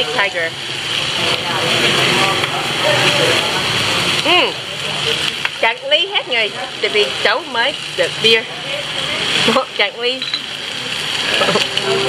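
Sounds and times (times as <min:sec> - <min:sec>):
restaurant hissing din: 0:00.0 - 0:12.0
voices chattering: 0:00.0 - 0:12.0
vocal exclamation: 0:04.2 - 0:04.7.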